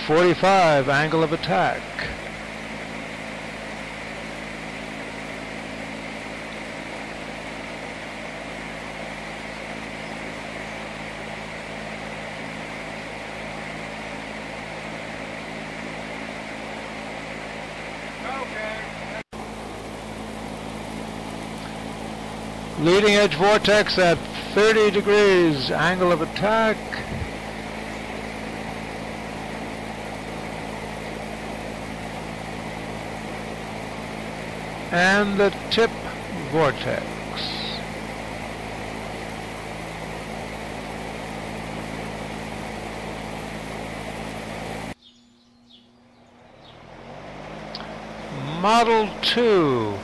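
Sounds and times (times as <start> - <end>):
electric fan running: 0.0 - 50.0.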